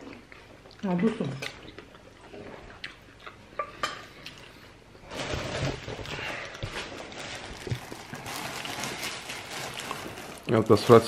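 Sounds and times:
rustling and scraping: 4.4 - 10.4.

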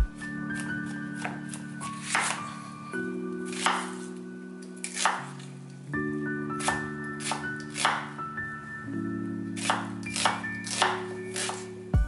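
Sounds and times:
soft background music: 0.0 - 12.0
knife cutting onion on wooden board: 2.0 - 2.4, 3.5 - 4.0, 4.8 - 5.4, 6.6 - 8.0, 9.6 - 11.7.

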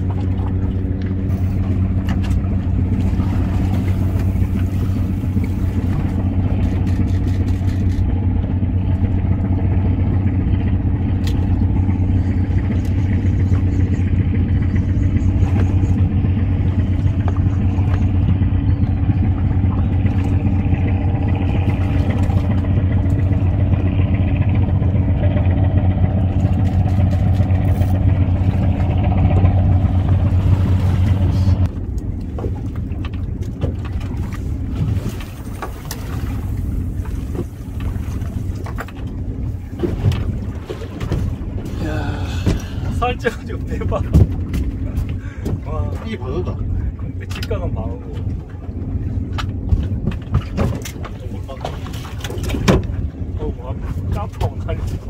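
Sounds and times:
outboard motor idling: 0.0 - 55.0
water wash: 0.0 - 55.0.

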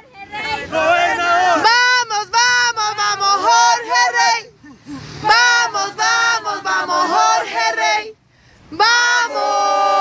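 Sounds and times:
women and girl singing chant: 0.0 - 4.5, 5.2 - 10.0.

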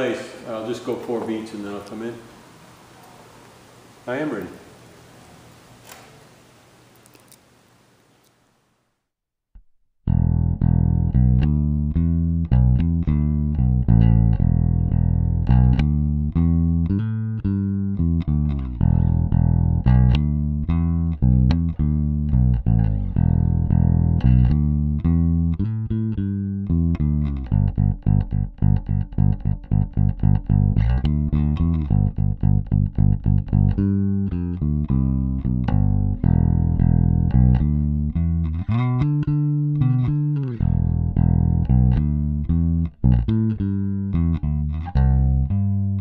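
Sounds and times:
electric bass line plucked: 9.6 - 46.0.

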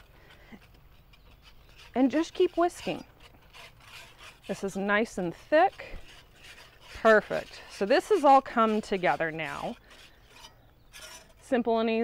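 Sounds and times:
whisk scraping a skillet: 0.0 - 12.0.

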